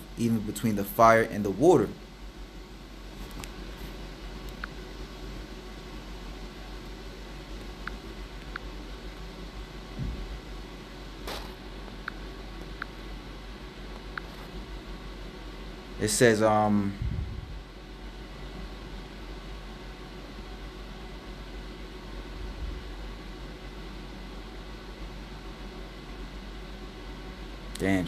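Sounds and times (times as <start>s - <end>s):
low hum with hiss: 0.0s - 28.0s
soft thump: 10.0s - 10.3s.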